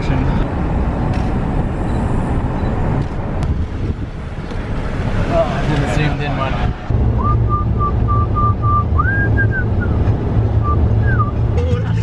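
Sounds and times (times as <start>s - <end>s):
car road and engine rumble: 0.0s - 12.0s
person whistling a tune: 7.2s - 10.0s, 10.6s - 11.4s.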